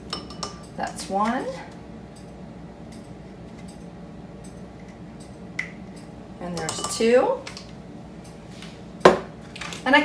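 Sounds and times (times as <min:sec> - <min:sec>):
spoon clinking against dish: 0:06.6 - 0:07.1.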